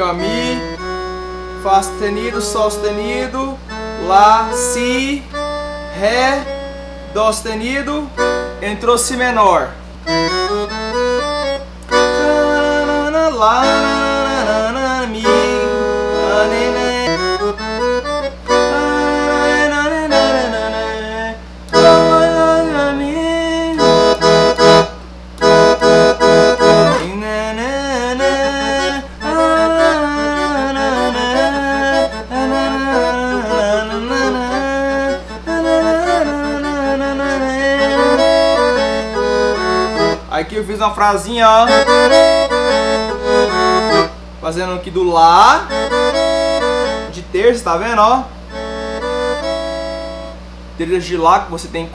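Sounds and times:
accordion melody with chords: 0.0s - 51.9s.

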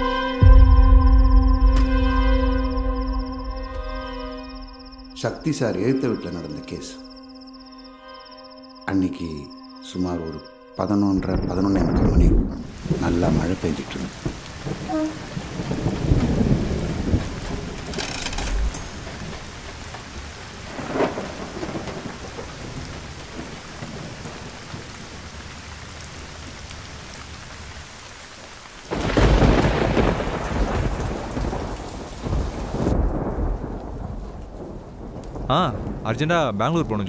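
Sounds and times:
heavy rain falling: 10.8s - 37.0s
thunder rumbling: 11.1s - 27.8s, 28.9s - 37.0s
loud thunderclap: 11.2s - 19.7s, 20.6s - 25.2s, 28.9s - 36.9s.

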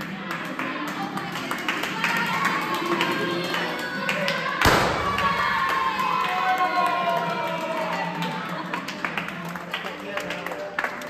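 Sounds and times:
group clapping: 0.0s - 11.0s
music: 0.0s - 11.0s
confetti cannon pop: 4.6s - 5.8s.

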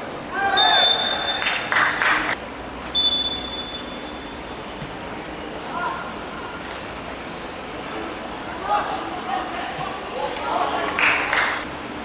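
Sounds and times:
referee's whistle blast: 0.5s - 1.6s, 2.9s - 4.3s.

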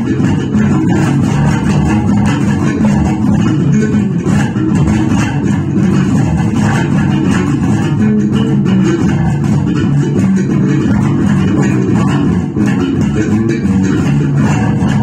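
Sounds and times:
electric bass guitar fingerstyle: 0.0s - 15.0s.

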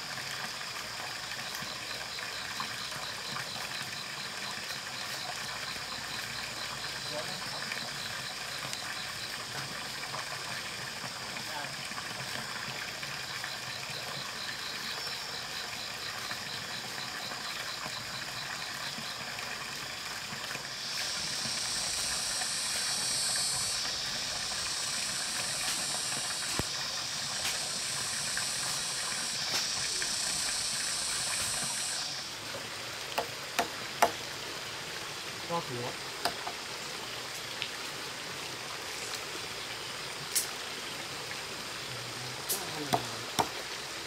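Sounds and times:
water pouring into pond: 0.0s - 44.0s
loud high hiss: 20.7s - 32.4s.

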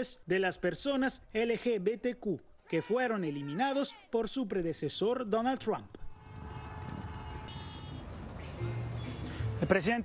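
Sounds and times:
low rumble of vehicles: 6.0s - 9.6s.

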